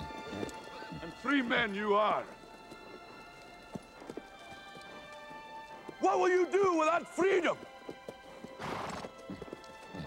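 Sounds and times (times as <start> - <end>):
horse hooves on turf: 0.0 - 10.0
orchestral film music: 0.0 - 10.0.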